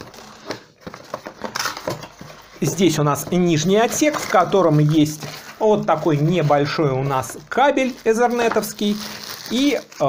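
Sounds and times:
cardboard rustling and scraping: 0.0s - 9.9s.

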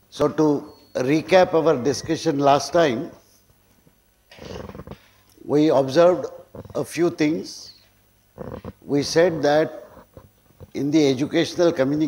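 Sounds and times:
man speaking: 0.2s - 3.2s, 5.4s - 7.8s, 8.9s - 9.9s, 10.7s - 12.0s.

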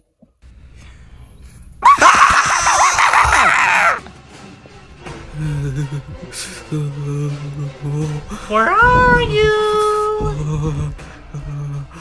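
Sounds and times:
shrieking voices screaming: 1.8s - 4.1s.

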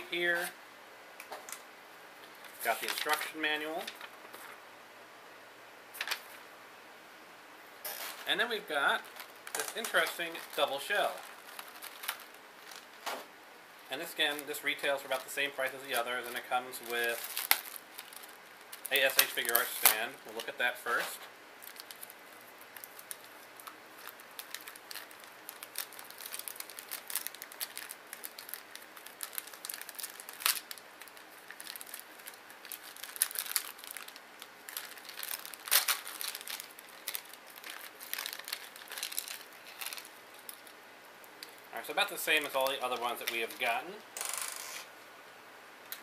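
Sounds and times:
plastic packaging crinkling: 2.2s - 4.6s, 7.9s - 13.1s, 13.9s - 40.8s, 41.4s - 44.8s.

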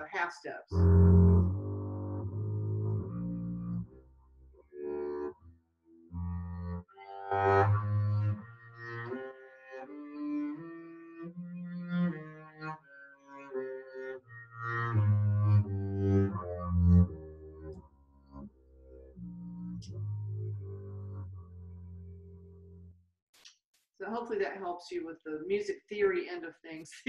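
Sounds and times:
bowed double bass scale: 0.7s - 23.0s.

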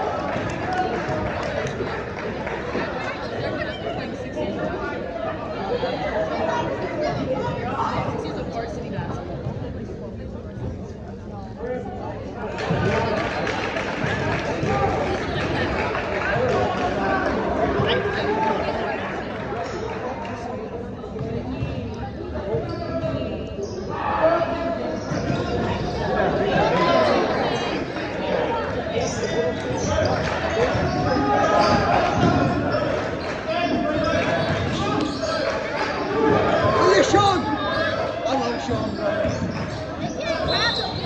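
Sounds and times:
spectators chattering: 0.0s - 41.0s.

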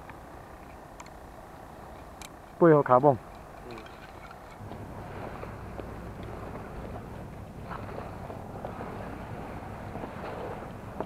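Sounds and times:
wind rumble on microphone: 3.0s - 11.0s.

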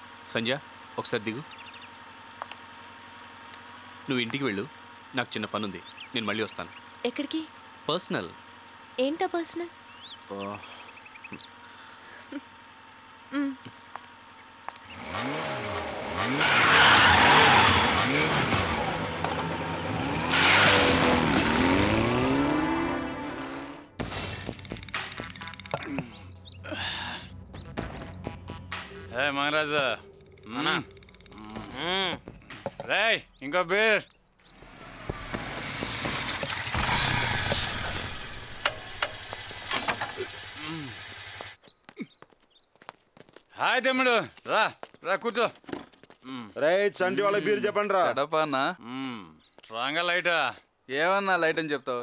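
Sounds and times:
motorcycle engine revving: 0.0s - 26.6s, 34.4s - 41.6s.

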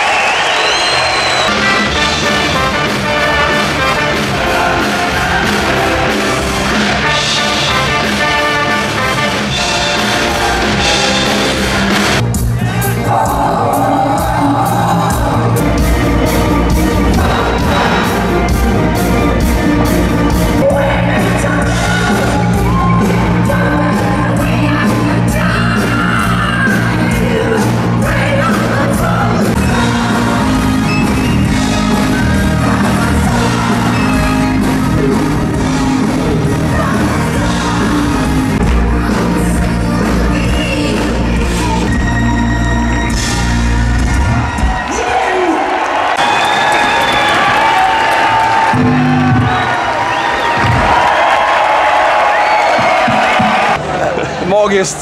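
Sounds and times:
crowd whooping: 0.0s - 16.0s, 21.4s - 24.7s, 42.4s - 54.5s
live rock band with orchestra: 0.4s - 51.6s.

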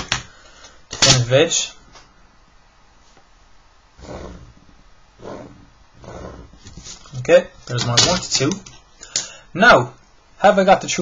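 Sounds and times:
pencil stroking on paper: 4.0s - 4.6s, 5.2s - 7.2s.

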